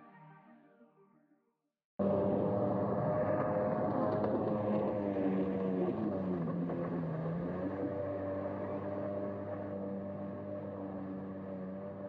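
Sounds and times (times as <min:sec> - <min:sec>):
jet ski engine running: 0:02.0 - 0:12.0.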